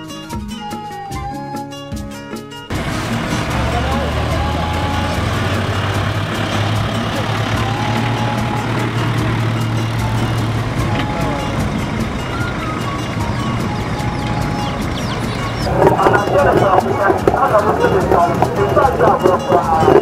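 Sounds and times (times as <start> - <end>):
road traffic noise: 0.0 - 20.0
vehicle engine humming: 2.6 - 20.0
people's voices: 2.7 - 20.0.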